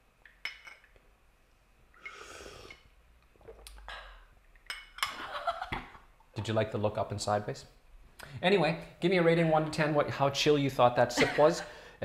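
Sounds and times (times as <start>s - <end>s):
slurping tea: 2.0s - 2.8s.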